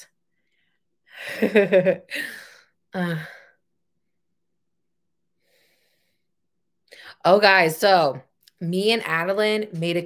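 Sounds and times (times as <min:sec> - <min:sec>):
woman sighing: 0:02.1 - 0:03.6.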